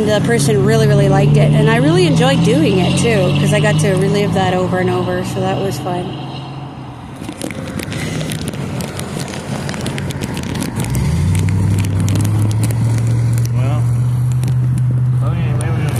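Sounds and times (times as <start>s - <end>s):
vehicle engine humming: 0.0s - 15.9s
clicks and crackles: 7.2s - 15.9s.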